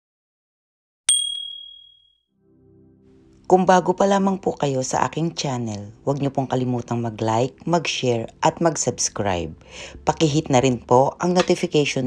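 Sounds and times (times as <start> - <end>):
bright high ding: 1.1 - 2.2.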